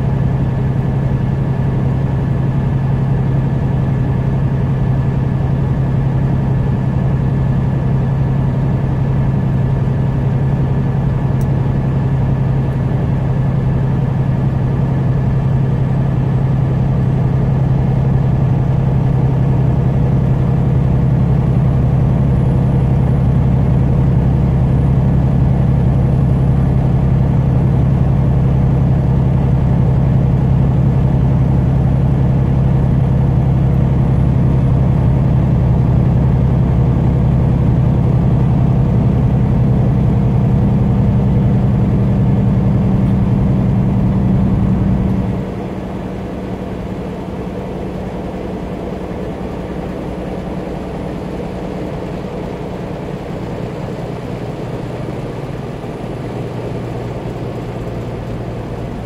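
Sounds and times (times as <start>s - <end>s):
engine drone: 0.0s - 59.0s
road noise: 0.0s - 59.0s.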